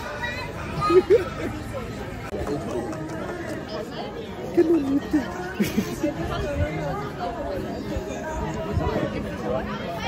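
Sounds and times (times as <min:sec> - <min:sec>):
background chatter of diners: 0:00.0 - 0:10.0
people talking close by: 0:00.0 - 0:10.0
people laughing: 0:00.6 - 0:03.5, 0:04.4 - 0:06.5.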